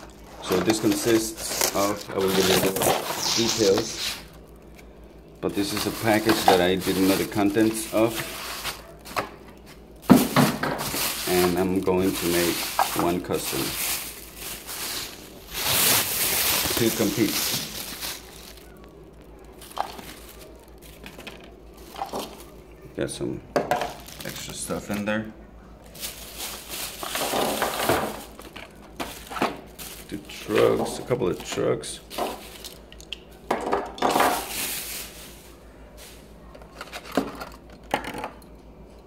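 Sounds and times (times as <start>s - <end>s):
packing paper rustling: 0.0s - 22.8s, 23.6s - 25.1s, 25.8s - 32.9s, 34.0s - 37.8s.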